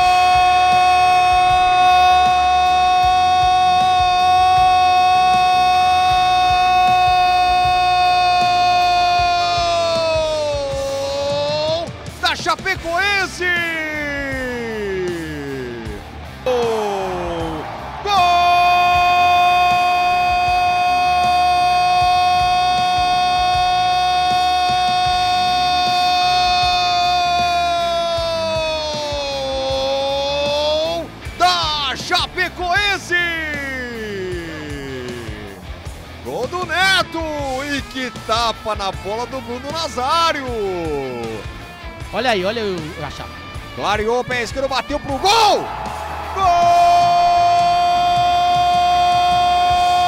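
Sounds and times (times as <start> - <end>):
commentator shouting goal: 0.0 - 35.6, 36.2 - 41.5, 42.1 - 50.0
background music: 0.0 - 50.0.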